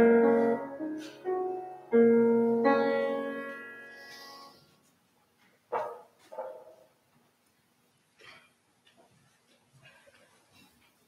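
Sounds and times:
piano chord: 0.0s - 4.7s.

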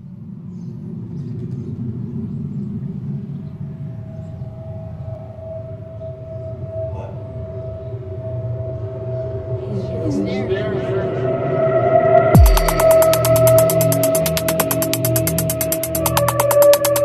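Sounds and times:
low rumbling drone: 1.8s - 17.0s
high sustained synth tone: 3.8s - 17.0s.

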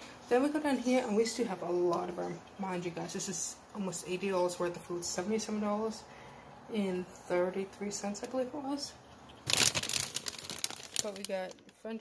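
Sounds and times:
plastic bags crinkling: 9.4s - 12.0s.

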